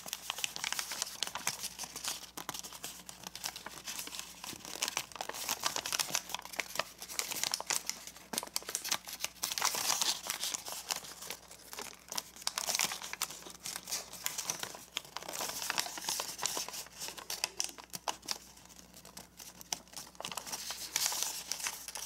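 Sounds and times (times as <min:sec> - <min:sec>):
paper crinkling and crackling: 0:00.0 - 0:22.0.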